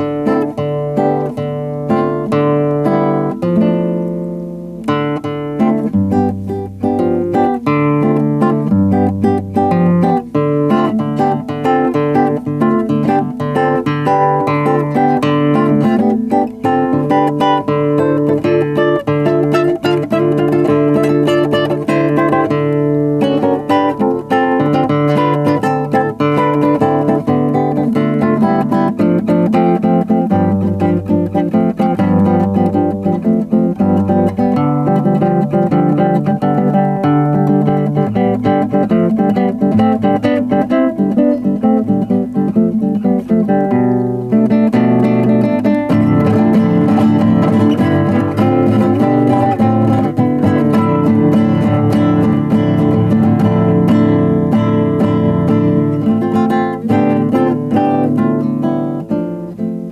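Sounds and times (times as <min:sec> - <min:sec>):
fingerstyle classical guitar: 0:00.0 - 0:59.9.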